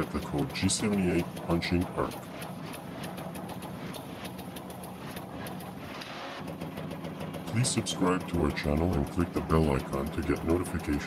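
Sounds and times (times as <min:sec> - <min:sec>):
machine with rapid mechanical strokes: 0:00.0 - 0:11.0.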